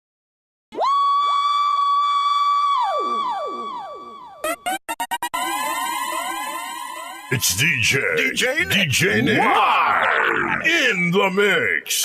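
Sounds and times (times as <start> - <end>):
falling pitch glides with echoes: 2.4 - 7.3
electronic tone sweeping up: 2.8 - 7.4.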